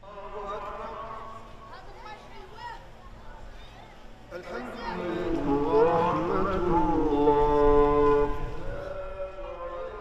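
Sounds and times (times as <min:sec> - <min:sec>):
man chanting prayer through microphone: 0:00.0 - 0:01.9, 0:04.4 - 0:10.0.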